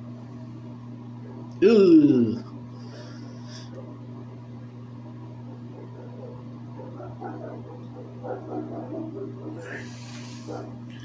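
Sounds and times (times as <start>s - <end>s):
low electrical hum: 0.0s - 11.0s
man muttering: 1.5s - 2.6s.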